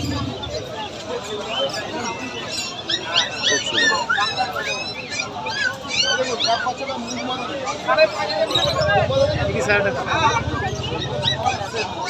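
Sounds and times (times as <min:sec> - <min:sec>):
crowd chatter: 0:00.0 - 0:12.0
puppies whimpering and yipping: 0:01.4 - 0:09.4, 0:10.0 - 0:12.0.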